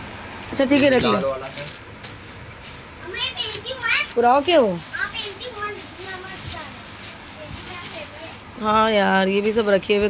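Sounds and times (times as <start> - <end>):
child speaking: 3.0 - 8.4.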